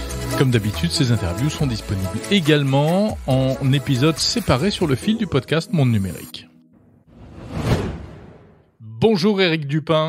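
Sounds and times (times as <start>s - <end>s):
man's voice: 0.3s - 6.4s
whoosh sound effect: 7.1s - 8.7s.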